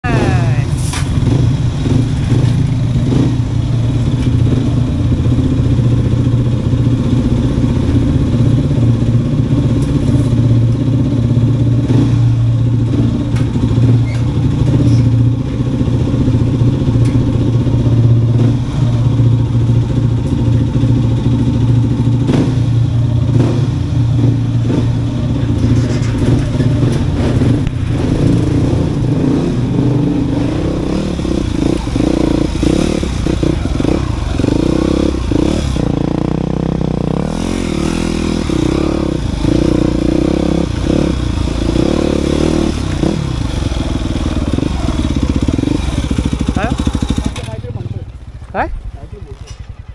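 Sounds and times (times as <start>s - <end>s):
dirt bike engines running: 0.0s - 49.9s.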